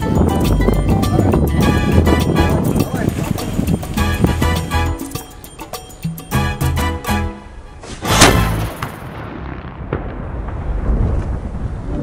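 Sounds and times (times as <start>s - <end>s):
cannon boom: 8.0s - 11.6s.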